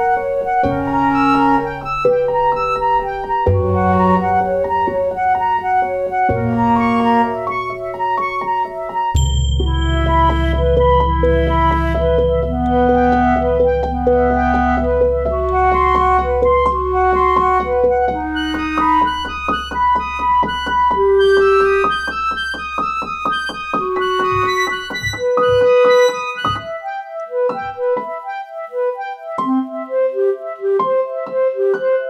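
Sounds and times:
slow piano piece: 0.0s - 32.0s.

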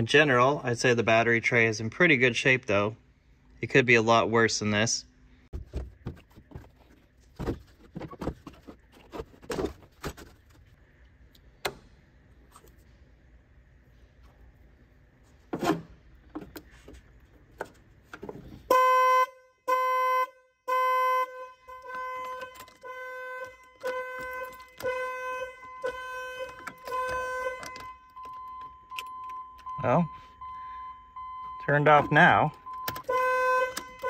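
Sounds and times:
car alarm beeping: 18.7s - 34.0s
steady alarm tone: 18.8s - 34.0s.

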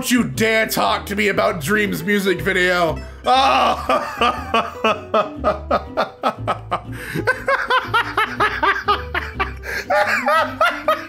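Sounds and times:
man laughing: 3.3s - 11.0s.

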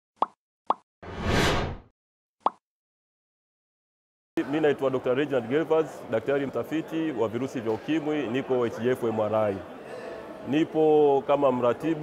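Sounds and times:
whoosh: 1.0s - 1.9s.

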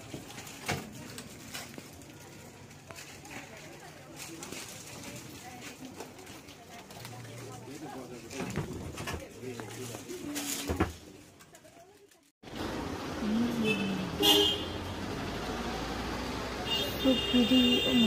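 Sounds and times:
shop bustle: 0.0s - 18.0s
street noise: 0.0s - 18.0s
vehicle horn toot: 13.6s - 15.0s, 16.6s - 18.0s.

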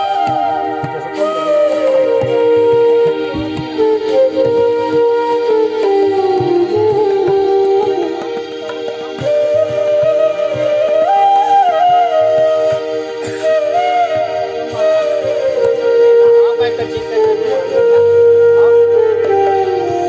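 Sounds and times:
bamboo flute melody: 0.0s - 20.0s.

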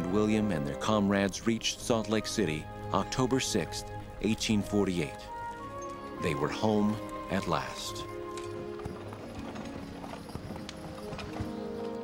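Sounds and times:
background music: 0.0s - 12.0s
horse hooves clopping: 0.0s - 12.0s.

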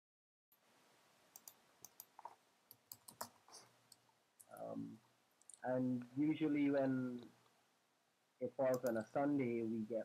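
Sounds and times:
typing on keyboard: 1.4s - 3.4s, 8.7s - 9.0s.

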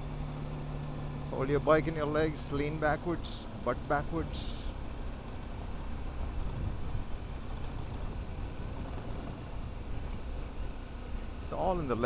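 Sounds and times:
motorcycle engine rumble: 0.0s - 12.0s
wind rush on microphone: 6.1s - 10.2s.

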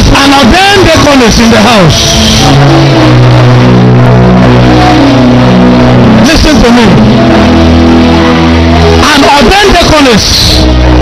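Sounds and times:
organ-like keyboard chords: 0.0s - 11.0s.

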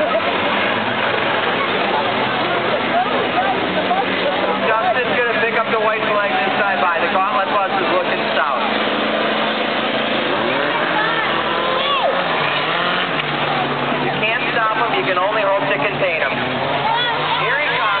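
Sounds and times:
racing car engines droning: 0.0s - 18.0s
spectators shouting and chattering: 0.0s - 18.0s.

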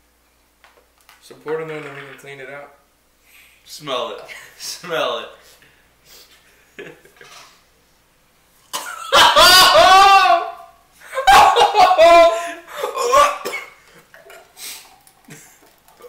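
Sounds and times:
young men laughing: 6.6s - 7.4s, 8.8s - 13.5s
coughing: 8.7s - 15.7s.

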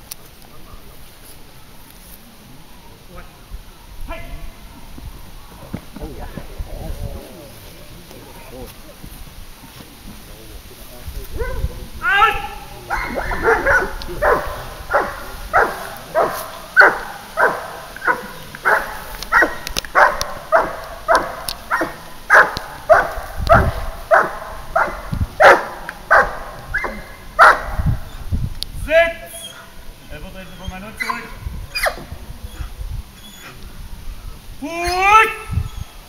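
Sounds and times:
dog barking loudly: 11.4s - 27.9s, 31.0s - 32.0s
dog yelp: 12.2s - 27.8s, 30.6s - 33.6s.

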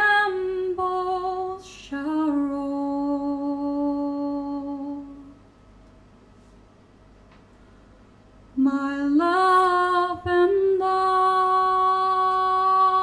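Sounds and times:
woman singing wordless melody: 0.0s - 5.4s, 8.6s - 13.0s.

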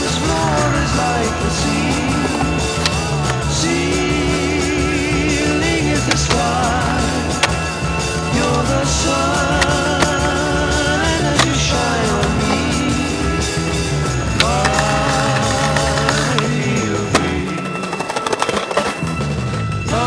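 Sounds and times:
skateboard clacks and wheel noise: 0.0s - 19.6s
song playing: 0.0s - 20.0s.

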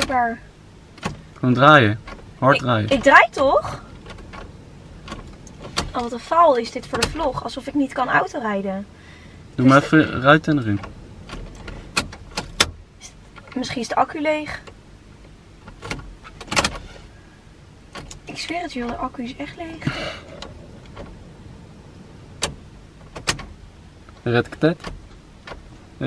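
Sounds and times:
faint ignition clicks: 0.9s - 7.9s, 9.4s - 17.2s, 17.9s - 25.8s
ignition key click: 3.9s - 6.0s, 10.5s - 12.8s, 15.6s - 16.8s, 22.4s - 24.2s
short rattle: 19.8s - 21.3s.

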